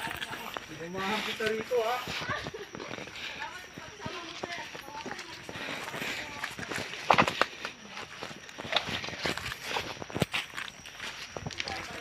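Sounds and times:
running footsteps on leafy dirt: 0:00.0 - 0:12.0.

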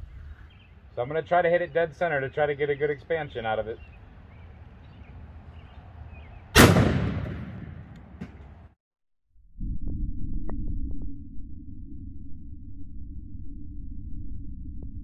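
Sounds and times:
steady low rumble: 0:00.0 - 0:02.1, 0:09.4 - 0:15.0
shotgun shot: 0:06.5 - 0:08.4.

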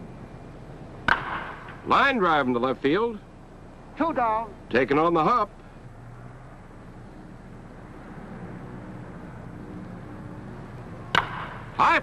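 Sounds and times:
steady background hiss: 0:00.0 - 0:12.0
wooden bat cracking ball: 0:01.0 - 0:01.8, 0:11.1 - 0:11.8.

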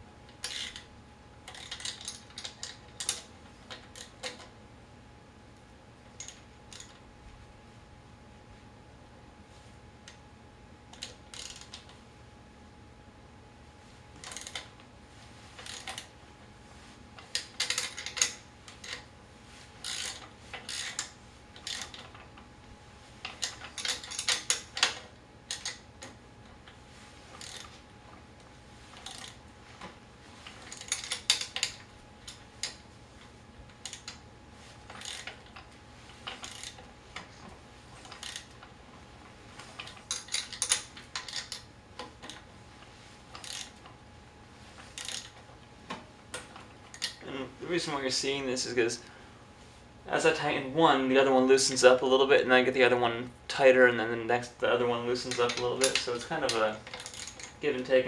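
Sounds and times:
hand wrench clicking: 0:00.4 - 0:00.8, 0:01.5 - 0:04.4, 0:10.9 - 0:11.9, 0:15.6 - 0:16.1, 0:17.2 - 0:19.0, 0:19.8 - 0:22.2, 0:23.3 - 0:26.2, 0:27.4 - 0:27.7, 0:29.0 - 0:29.4, 0:30.7 - 0:32.8, 0:33.8 - 0:34.2, 0:34.9 - 0:36.8, 0:38.0 - 0:38.6, 0:39.8 - 0:42.4, 0:43.3 - 0:43.7, 0:45.0 - 0:45.3, 0:55.3 - 0:57.6.

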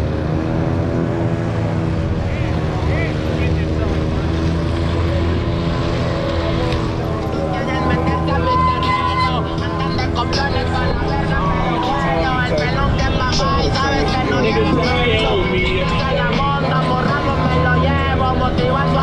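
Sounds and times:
crowd voices: 0:00.0 - 0:19.0.

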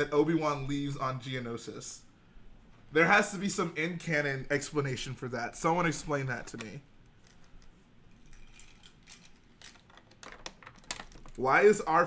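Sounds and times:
plastic bricks clicking: 0:08.6 - 0:11.4.

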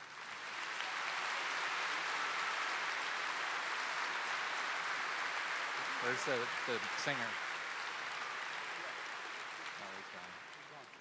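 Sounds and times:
large audience applauding: 0:00.0 - 0:11.0.

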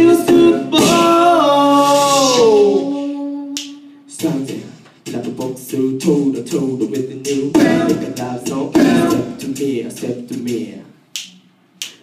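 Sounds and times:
male a cappella chord: 0:00.0 - 0:10.9.

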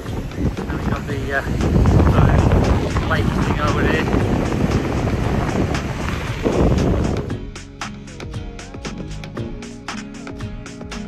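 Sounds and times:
wind buffeting microphone: 0:00.0 - 0:07.4.

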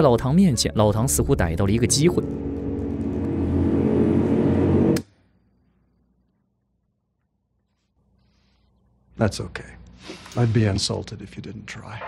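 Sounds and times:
low sustained drone: 0:01.2 - 0:05.5.

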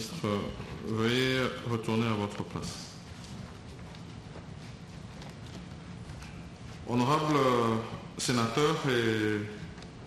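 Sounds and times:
man speaking: 0:00.0 - 0:03.0, 0:06.8 - 0:09.7
low room hum: 0:00.0 - 0:10.0
footsteps: 0:02.3 - 0:07.0.

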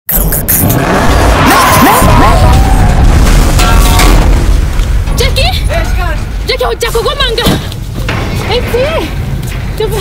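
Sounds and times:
heavy low rumble: 0:00.1 - 0:10.0.

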